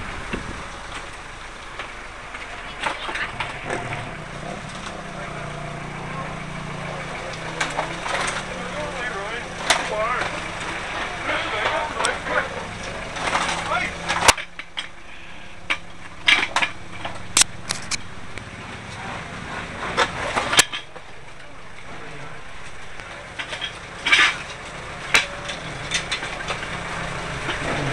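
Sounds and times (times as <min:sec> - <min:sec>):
steady low hum: 0:00.0 - 0:27.9
indistinct voices: 0:02.2 - 0:27.9.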